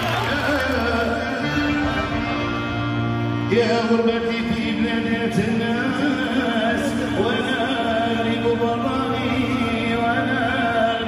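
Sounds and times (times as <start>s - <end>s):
guitars: 0.0s - 11.0s
keyboard: 0.0s - 11.0s
man singing: 0.0s - 11.0s.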